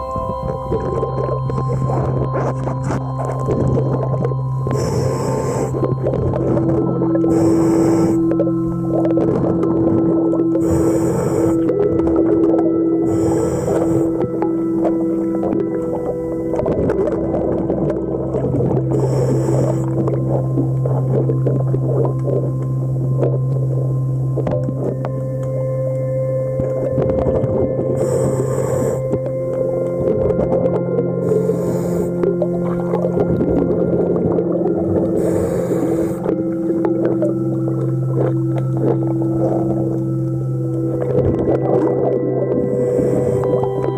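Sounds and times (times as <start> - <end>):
underwater hum of held tones: 0.0 - 43.9
scuba regulator hissing: 7.3 - 8.3, 35.1 - 36.3.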